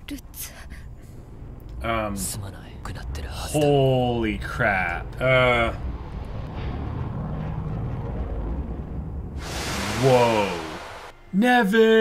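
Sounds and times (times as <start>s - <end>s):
steady low rumble: 0.0s - 11.3s.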